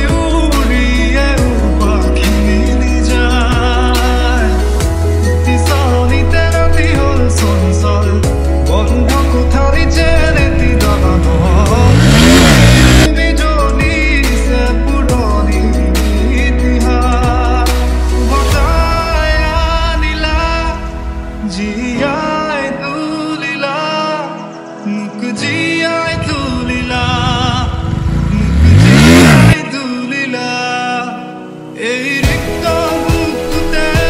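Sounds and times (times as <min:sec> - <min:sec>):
background music with singing: 0:00.0 - 0:34.0
motorcycle engine revving: 0:08.9 - 0:13.1, 0:26.1 - 0:29.6.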